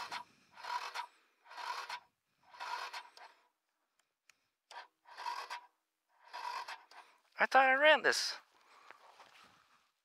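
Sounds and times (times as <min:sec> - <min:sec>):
electric starter cranking: 0:00.0 - 0:03.3, 0:04.7 - 0:07.1.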